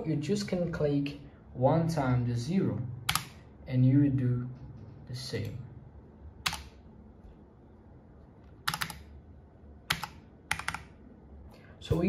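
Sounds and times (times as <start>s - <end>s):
keyboard keys clicking: 8.6s - 9.1s, 9.9s - 11.0s.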